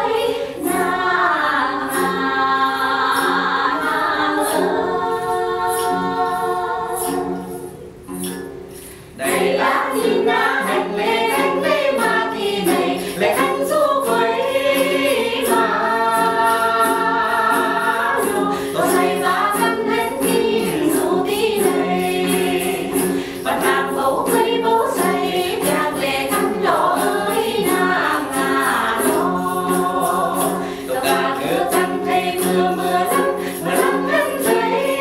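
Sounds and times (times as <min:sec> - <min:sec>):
women singing together: 0:00.0 - 0:07.9, 0:09.2 - 0:35.0.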